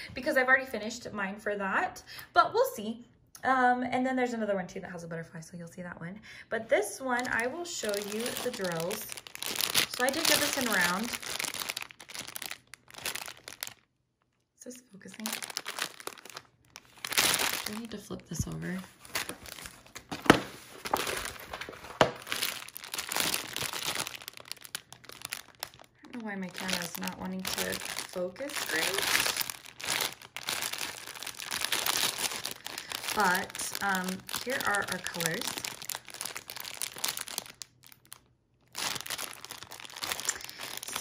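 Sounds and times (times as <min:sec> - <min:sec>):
plastic packaging crinkling: 0:07.0 - 0:13.9, 0:15.0 - 0:41.0.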